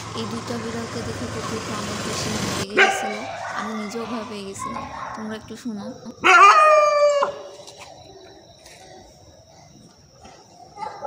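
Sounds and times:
faint background noise: 0.0 - 11.0
animal call: 6.2 - 9.2.

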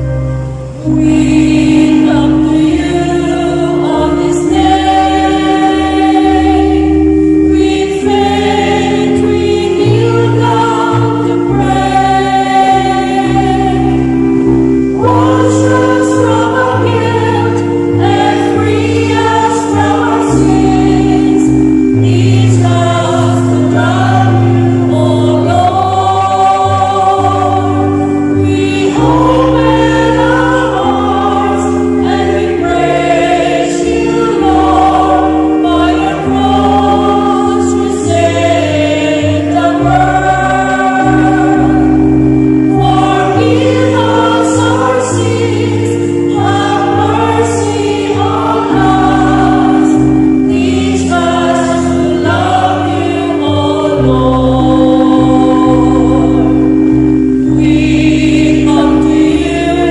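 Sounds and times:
choir singing a hymn: 0.0 - 59.9
held accompaniment chords: 0.0 - 59.9.

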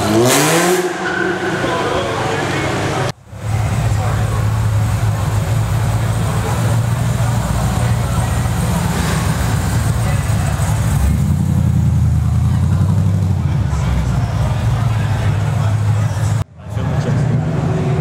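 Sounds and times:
car engine revving: 0.0 - 18.0
car engine rolling past: 0.0 - 18.0.

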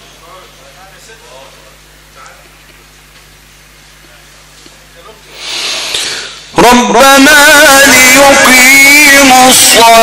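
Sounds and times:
faint hall noise: 0.0 - 10.0
breath hissing into microphone: 5.3 - 6.5.

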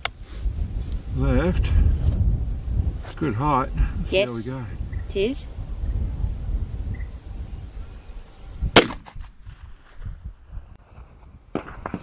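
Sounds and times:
rifle shot: 8.8 - 10.2, 11.5 - 12.0.

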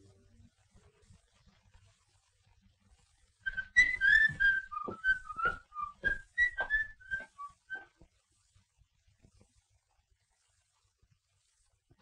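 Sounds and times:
person whistling a tune: 3.5 - 7.9.

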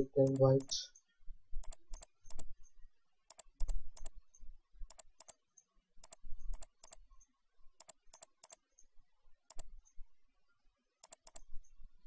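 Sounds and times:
computer mouse clicking: 0.0 - 8.9, 9.5 - 10.0, 11.0 - 11.8.

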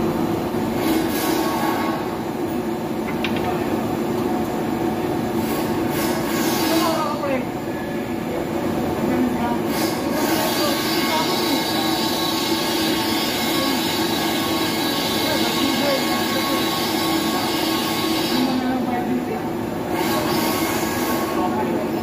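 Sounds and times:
machine motor hum and whir: 0.0 - 22.0.

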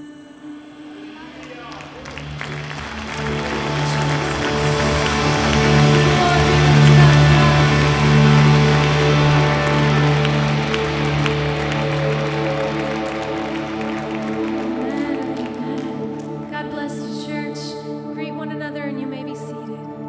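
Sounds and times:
worship band playing: 0.0 - 18.5
congregation clapping: 1.2 - 16.9.

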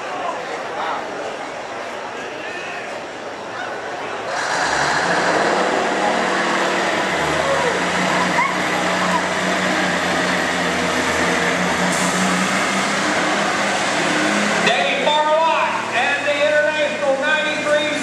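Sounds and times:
diesel truck engine drone: 3.2 - 18.0.

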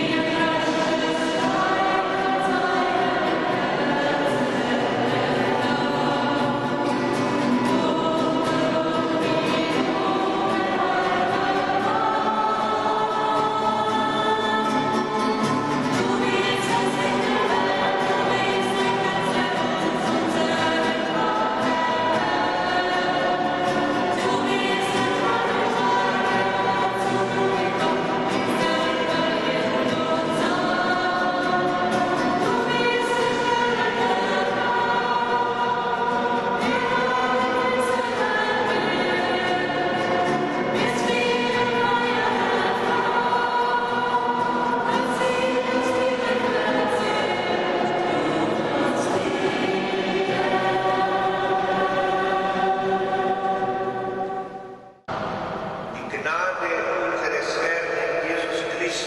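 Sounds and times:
strummed acoustic guitars: 0.0 - 56.8
voices singing worship song: 0.0 - 59.0.

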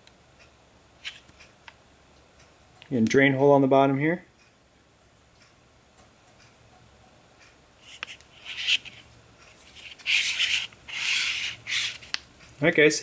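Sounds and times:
knife sheath rubbing and scraping: 1.0 - 1.2, 7.8 - 12.2
click: 5.4 - 6.6.

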